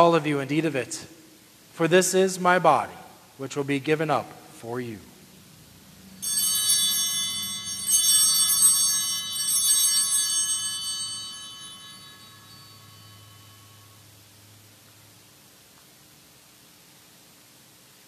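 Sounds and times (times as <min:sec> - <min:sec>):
small metal altar bells ringing: 0:06.1 - 0:14.6.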